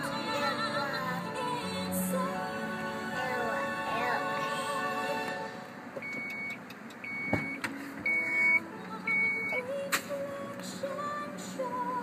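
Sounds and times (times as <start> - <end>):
music with singing: 0.0 - 5.8, 7.6 - 12.0
car warning chime beeping: 6.0 - 9.7.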